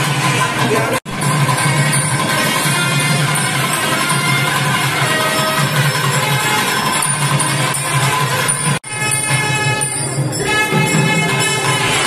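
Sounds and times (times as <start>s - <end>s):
instrumental music: 0.0s - 12.0s.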